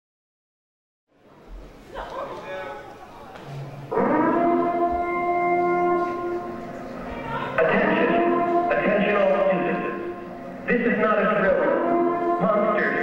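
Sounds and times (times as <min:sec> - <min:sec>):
horn-like tone: 0:03.6 - 0:13.0
rough horn-like blasts: 0:03.8 - 0:13.0.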